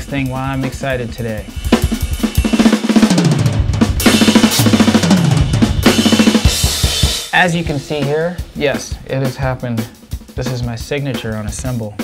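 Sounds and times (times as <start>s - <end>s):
bass drum: 0.0s - 12.0s
fast drum fills: 0.0s - 12.0s
snare drum: 0.0s - 12.0s
cymbal crashes: 0.1s - 9.0s.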